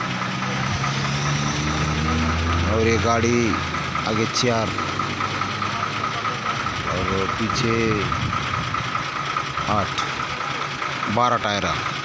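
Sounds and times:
truck diesel engine idling: 0:00.0 - 0:12.0.

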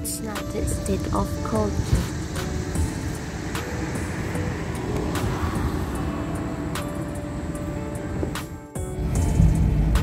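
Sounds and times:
steady low rumble: 0:00.0 - 0:10.0
vehicle passing: 0:00.0 - 0:10.0.

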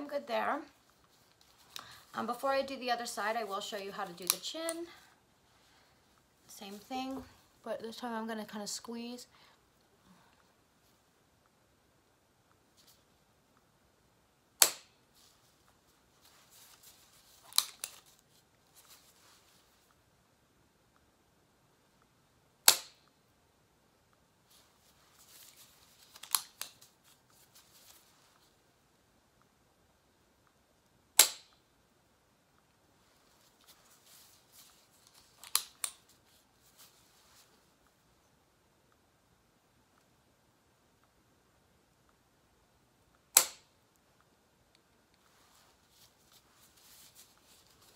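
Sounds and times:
injector pen snapping: 0:17.5 - 0:18.0, 0:26.2 - 0:26.8, 0:31.2 - 0:31.6, 0:35.4 - 0:36.0, 0:43.3 - 0:43.7
injector pen firing snap: 0:22.6 - 0:23.0, 0:31.2 - 0:31.6, 0:43.3 - 0:43.7
handling rustles: 0:33.0 - 0:37.9, 0:45.2 - 0:47.9.

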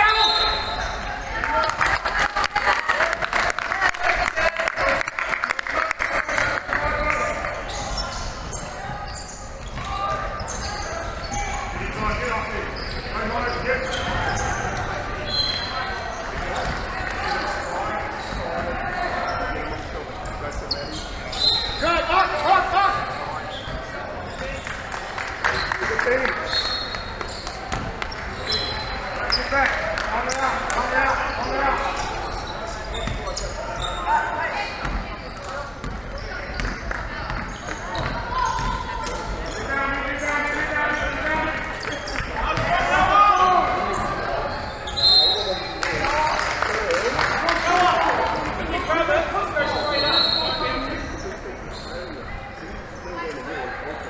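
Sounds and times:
people calling and chatting: 0:00.0 - 0:54.0.

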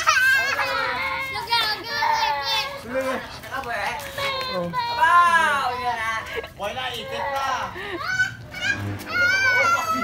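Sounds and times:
other voices: 0:00.2 - 0:10.0.

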